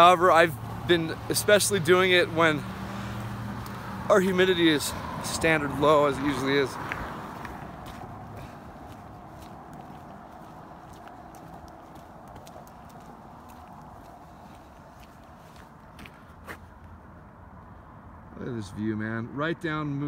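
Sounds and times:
faint road noise: 0.0 - 20.0.

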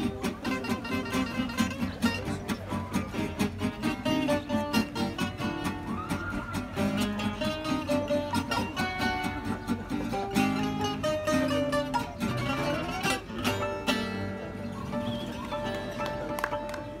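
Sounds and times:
guitars strumming swing rhythm: 0.0 - 17.0
plucked domra and guitar lead: 0.0 - 17.0.

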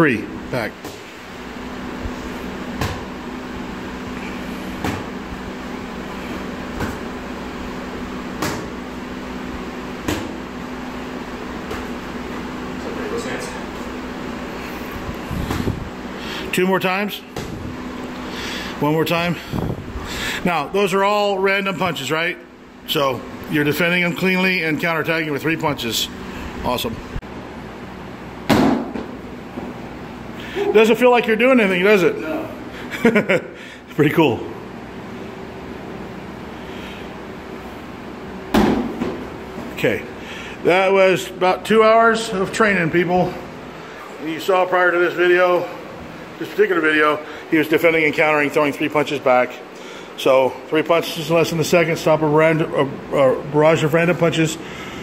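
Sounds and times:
steady low hum: 0.0 - 55.0
boxing gloves slapping: 4.8 - 5.2, 8.3 - 8.8, 10.0 - 10.4, 28.5 - 29.2, 38.5 - 39.2.

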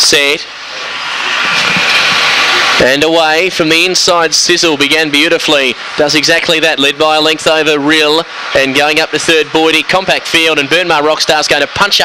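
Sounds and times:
mechanical lure rushing whir: 0.5 - 2.8.

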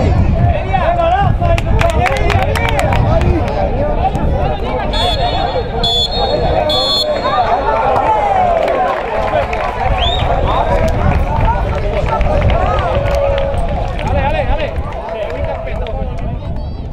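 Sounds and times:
players and spectators shouting: 3.3 - 15.7.

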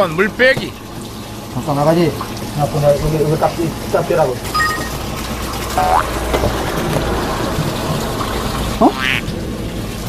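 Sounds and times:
water rushing through hose: 0.0 - 10.0.

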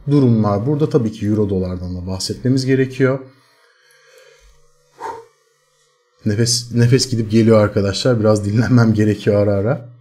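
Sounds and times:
man talking: 0.0 - 3.3, 6.2 - 10.0
faint steady hum: 0.0 - 10.0
man breathing: 3.3 - 5.4.

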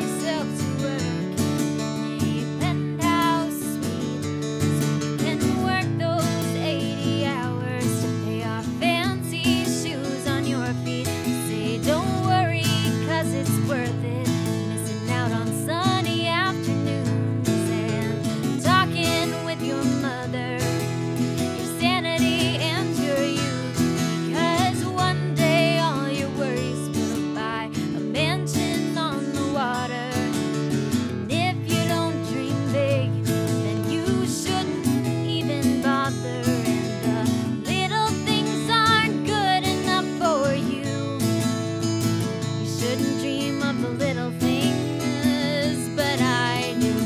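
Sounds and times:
acoustic guitars strumming: 0.0 - 47.0
woman singing: 0.0 - 47.0.

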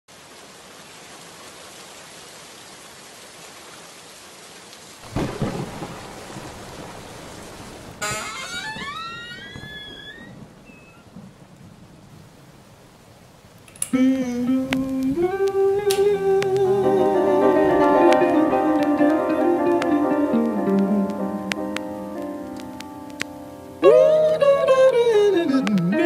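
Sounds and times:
steady rain: 0.1 - 26.0
thunder clap: 5.0 - 12.0.

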